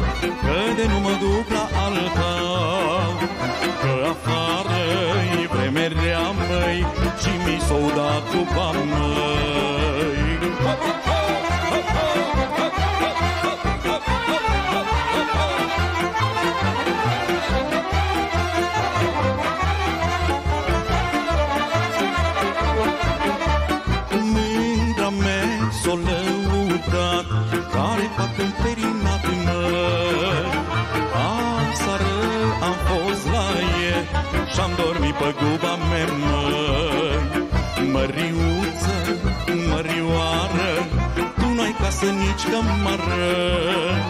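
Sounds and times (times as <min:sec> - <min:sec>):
low bass notes: 0:00.0 - 0:44.0
violins playing ornamented tune: 0:00.0 - 0:44.0.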